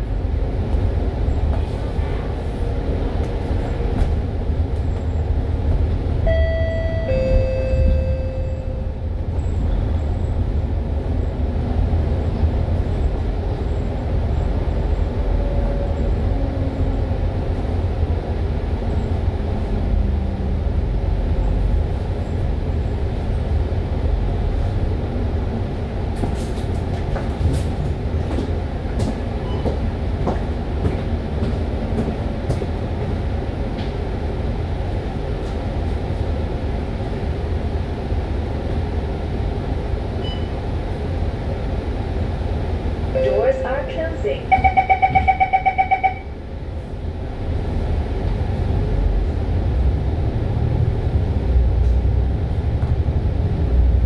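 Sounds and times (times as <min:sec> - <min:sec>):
bus engine drone: 0:00.0 - 0:54.0
road rumble: 0:00.0 - 0:54.0.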